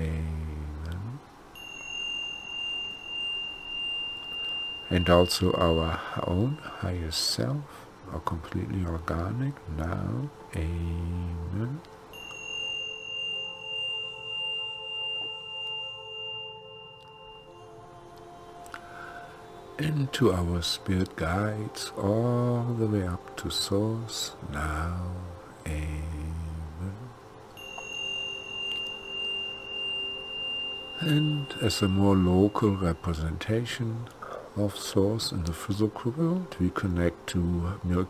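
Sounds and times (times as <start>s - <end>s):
crystal singing bowl ringing: 0.0s - 7.8s, 11.6s - 24.5s, 25.3s - 37.8s
faint low hum: 0.0s - 38.0s.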